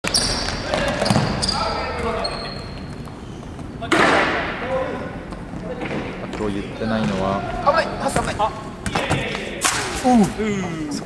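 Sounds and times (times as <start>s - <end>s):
shoe squeak: 0.0s - 3.8s.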